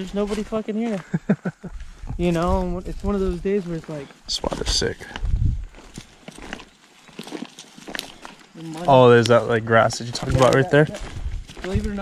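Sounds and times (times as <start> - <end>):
footsteps on grass and twigs: 0.0 - 12.0.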